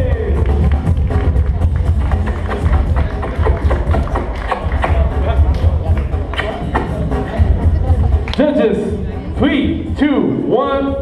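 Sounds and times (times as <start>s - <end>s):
heavy steady bass: 0.0s - 11.0s
loud music over sound system: 0.0s - 11.0s.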